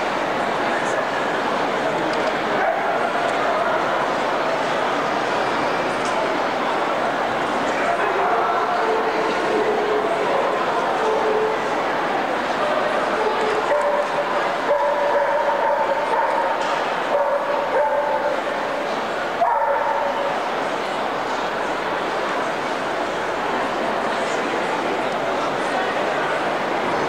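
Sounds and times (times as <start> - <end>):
murmur of indoor crowd: 0.0 - 27.0.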